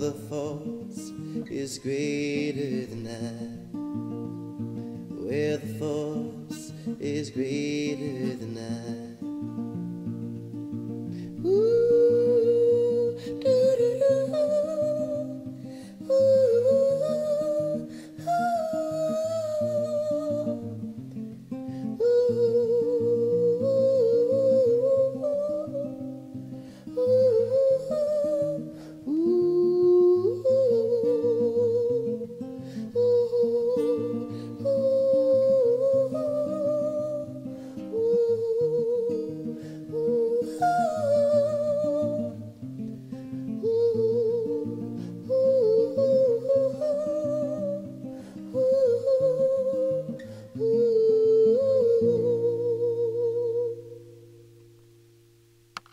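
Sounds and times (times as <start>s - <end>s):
humming vocal melody: 0.0s - 3.6s, 5.2s - 9.2s, 11.4s - 20.8s, 21.8s - 26.2s, 26.8s - 42.6s, 43.5s - 54.0s
strummed acoustic guitar: 0.0s - 55.9s.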